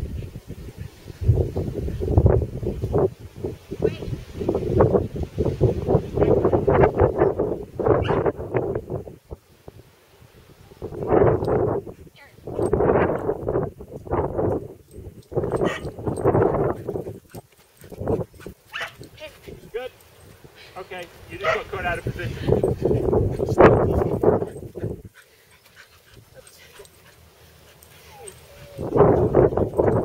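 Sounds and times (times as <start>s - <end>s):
dog barking: 8.0s - 8.3s, 15.5s - 16.2s, 18.7s - 19.0s, 21.4s - 21.7s.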